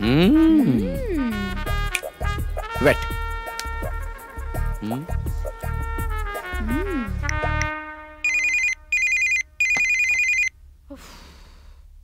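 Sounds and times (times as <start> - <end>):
mobile phone ringtone trilling: 8.2 - 10.5.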